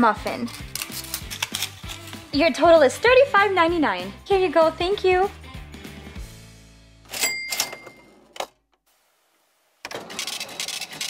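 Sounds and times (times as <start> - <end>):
plastic toy pieces rattling: 0.3 - 2.2, 9.9 - 11.0
cash register ring: 7.1 - 8.4.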